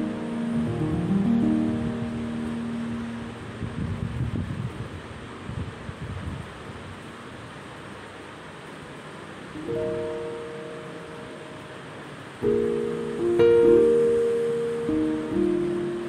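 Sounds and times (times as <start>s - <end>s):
steady hiss: 0.0s - 16.0s
instrumental background music: 9.6s - 11.8s, 12.4s - 16.0s.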